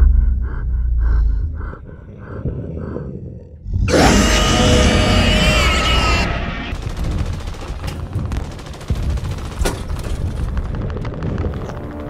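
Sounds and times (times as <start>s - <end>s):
deep rumble: 0.0s - 9.5s.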